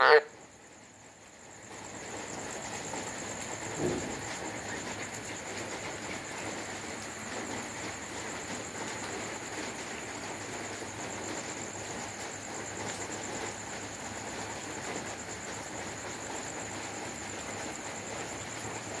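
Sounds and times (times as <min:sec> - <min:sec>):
insect chorus trilling: 0:00.0 - 0:19.0
even hiss: 0:02.3 - 0:07.8.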